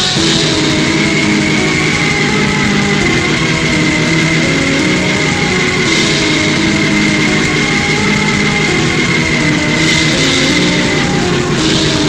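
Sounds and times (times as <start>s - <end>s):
distorted black metal guitar: 0.0s - 12.0s.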